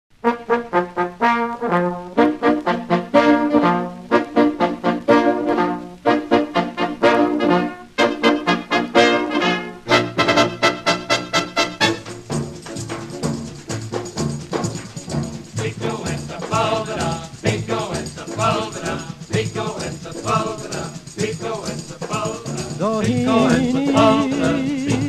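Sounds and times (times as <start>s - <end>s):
brass dance-band music: 0.1s - 25.0s.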